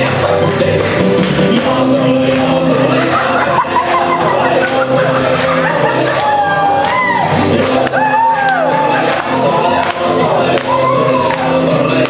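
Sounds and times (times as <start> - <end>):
loud music over pa system: 0.0 - 12.0.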